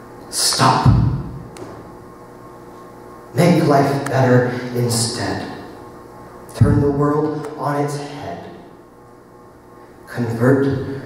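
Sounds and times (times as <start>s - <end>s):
low hum: 0.0s - 11.0s
spoken word reverberating in hall: 0.3s - 1.8s, 3.3s - 5.9s, 6.5s - 8.9s, 10.1s - 11.0s.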